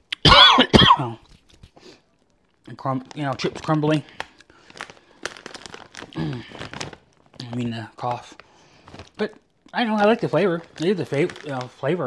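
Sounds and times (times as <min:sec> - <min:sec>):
chip bag crinkling: 0:01.2 - 0:12.0.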